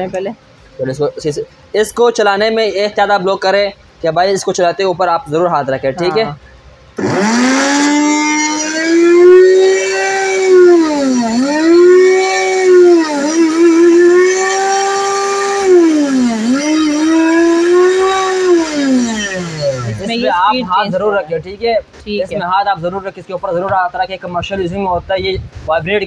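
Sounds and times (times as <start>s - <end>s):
blender motor whining: 7.0s - 20.3s.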